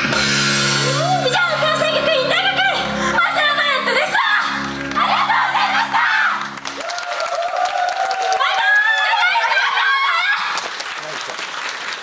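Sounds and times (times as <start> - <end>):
audience applauding: 6.4 - 12.0.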